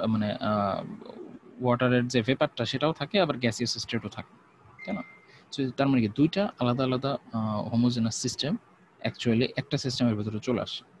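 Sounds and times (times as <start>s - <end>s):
lecturer talking: 0.0s - 4.2s, 4.8s - 10.8s.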